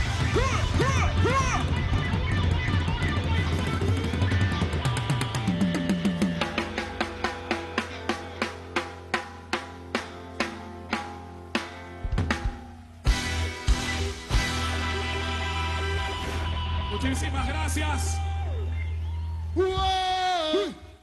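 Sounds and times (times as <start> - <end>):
drum kit strikes: 0.0 - 15.1.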